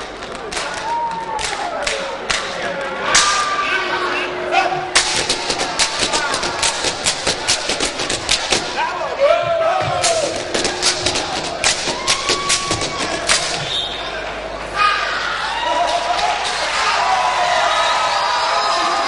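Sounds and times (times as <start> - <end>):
people shouting: 3.0 - 19.0
stamps and slaps: 5.0 - 8.8, 10.0 - 13.7.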